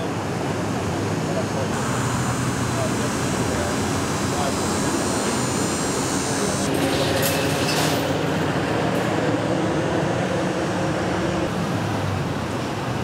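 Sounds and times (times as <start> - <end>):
vehicle engines idling: 0.0 - 13.0.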